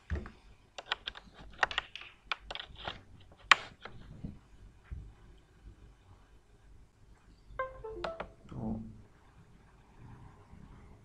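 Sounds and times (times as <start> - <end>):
computer keyboard keys clicking: 0.8 - 2.9.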